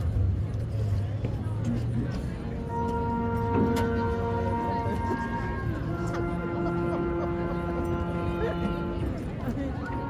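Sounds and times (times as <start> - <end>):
crowd chatter: 0.0 - 10.0
sustained musical note: 2.6 - 9.2.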